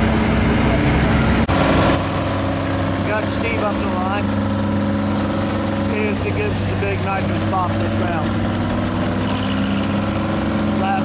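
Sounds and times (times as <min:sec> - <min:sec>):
steady engine hum: 0:00.0 - 0:11.0
vehicle engines idling: 0:00.0 - 0:11.0.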